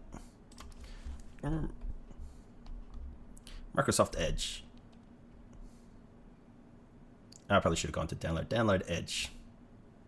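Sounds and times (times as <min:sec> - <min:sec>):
typing on computer keyboard: 0:00.5 - 0:00.8.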